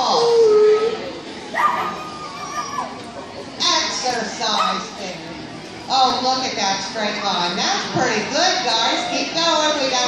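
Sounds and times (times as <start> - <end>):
dog whining: 1.6 - 3.0.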